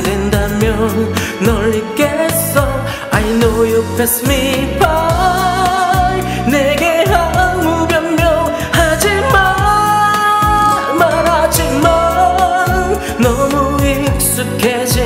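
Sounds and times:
karaoke backing track: 0.0 - 15.0
man singing pop ballad: 0.0 - 15.0.

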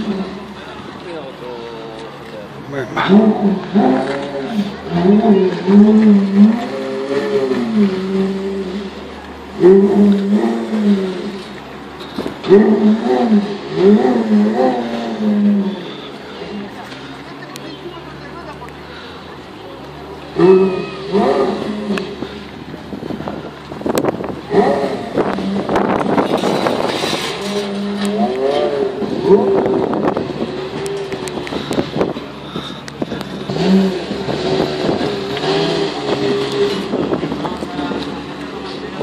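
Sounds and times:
people talking: 0.0 - 7.7, 15.5 - 23.5, 36.1 - 39.0
sports car engine revving: 0.0 - 39.0.

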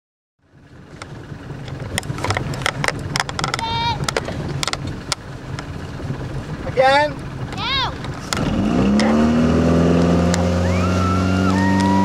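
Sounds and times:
boat motor humming: 0.4 - 12.0.

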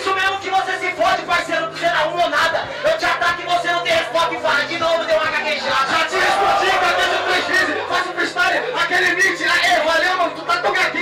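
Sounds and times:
crowd noise: 0.0 - 11.0
man rapping through pa: 0.0 - 11.0.

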